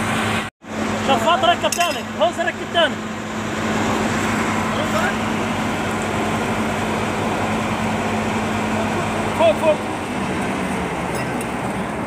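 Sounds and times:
ventilation blower running: 0:00.0 - 0:12.0.

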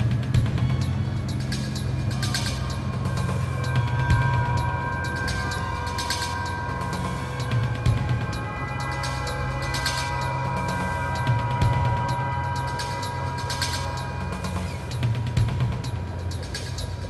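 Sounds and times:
low drone: 0:00.0 - 0:17.0
long held notes: 0:02.7 - 0:16.4.

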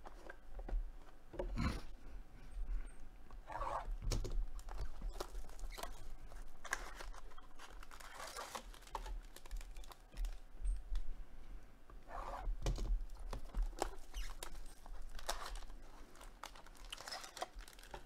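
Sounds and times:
cardboard rustling: 0:03.5 - 0:11.1, 0:12.4 - 0:18.0
cellophane crinkling and tearing: 0:03.6 - 0:11.1, 0:12.4 - 0:18.0.

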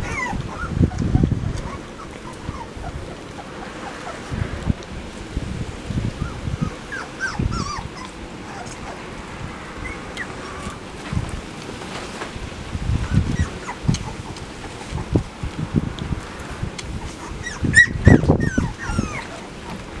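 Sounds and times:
puppies whimpering and squeaking: 0:00.0 - 0:04.6, 0:06.2 - 0:09.1, 0:09.7 - 0:10.8, 0:13.0 - 0:15.2, 0:17.0 - 0:20.0.

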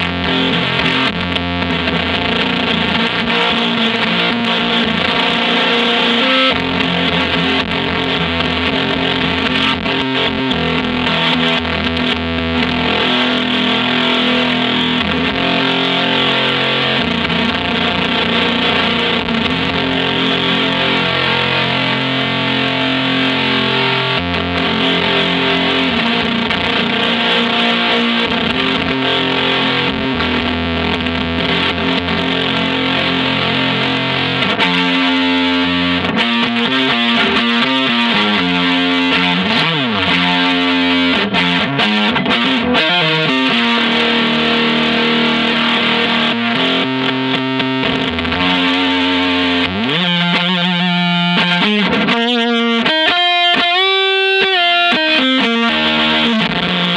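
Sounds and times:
distorted electric guitar chords: 0:00.0 - 0:56.9.

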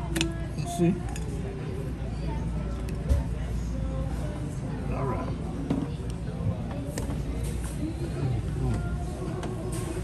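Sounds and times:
restaurant chatter: 0:00.0 - 0:10.0.

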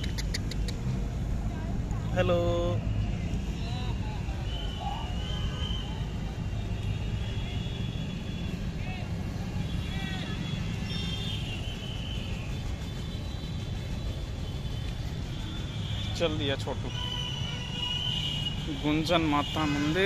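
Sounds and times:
low rumble of traffic: 0:00.0 - 0:20.0.

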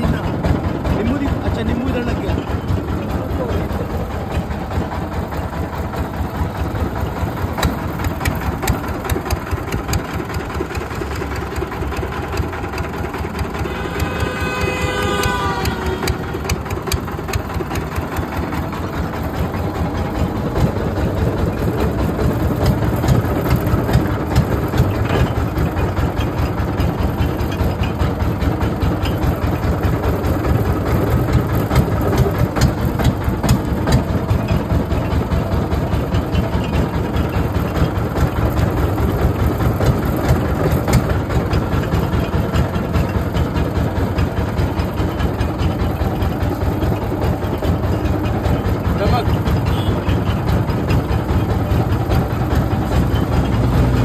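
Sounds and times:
juice crusher machine drone: 0:00.0 - 0:54.0.

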